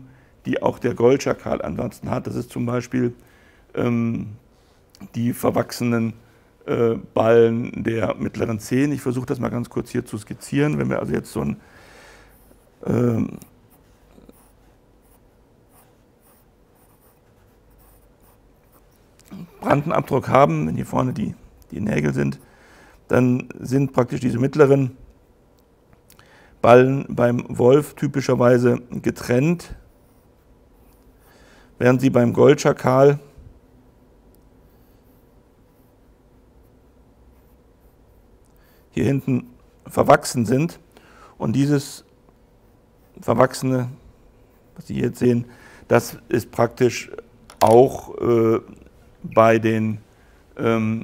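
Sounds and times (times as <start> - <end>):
low room hum: 0.0 - 51.0
pencil scratching on paper: 13.7 - 19.0.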